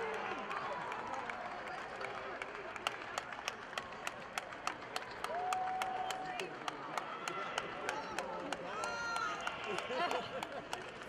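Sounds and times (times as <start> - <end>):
people clapping: 0.0 - 11.0.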